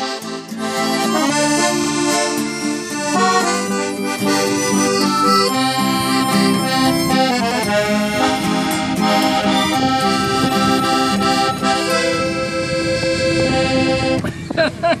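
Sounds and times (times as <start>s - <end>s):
strummed acoustic guitar: 0.0s - 13.8s
piano accordion playing: 0.0s - 14.2s
harmonica: 0.0s - 14.3s
people laughing: 14.2s - 15.0s.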